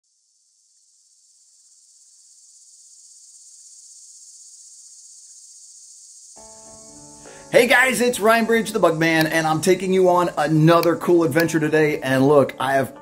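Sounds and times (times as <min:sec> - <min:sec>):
crickets chirping: 0:00.0 - 0:13.0.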